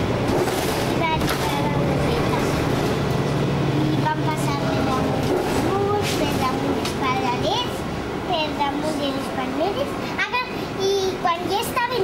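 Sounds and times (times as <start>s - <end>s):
vehicle cabin drone: 0.0s - 10.4s
people talking: 0.9s - 2.8s, 3.9s - 12.0s.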